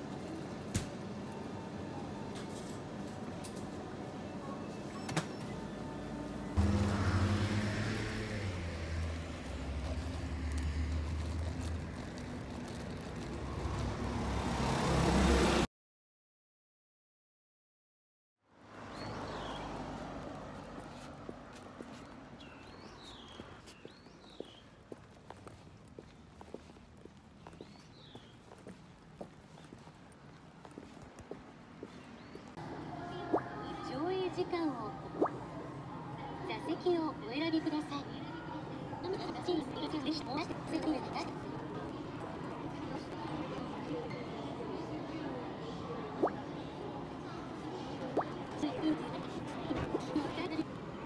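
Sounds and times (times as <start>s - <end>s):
steady low traffic rumble: 0.0s - 15.6s, 18.9s - 51.0s
vehicle tyre hiss passing: 6.6s - 11.4s
footsteps walking: 20.0s - 32.6s.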